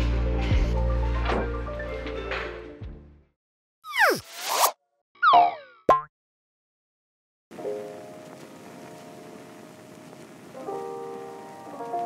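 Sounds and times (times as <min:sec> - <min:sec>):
cartoon falling glide: 0:03.8 - 0:06.1.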